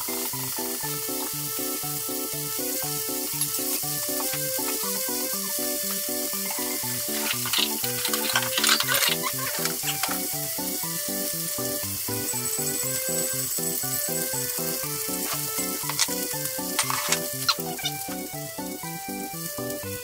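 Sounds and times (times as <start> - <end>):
meat sizzling in a pan: 0.0 - 20.0
sharp clicks: 14.0 - 18.3.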